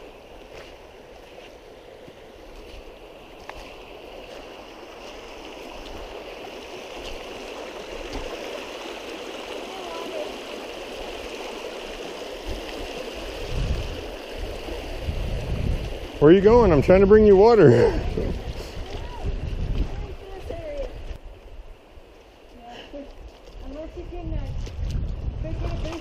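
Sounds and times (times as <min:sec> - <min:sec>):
creek rushing over rocks: 0:00.0 - 0:24.4, 0:25.3 - 0:26.0.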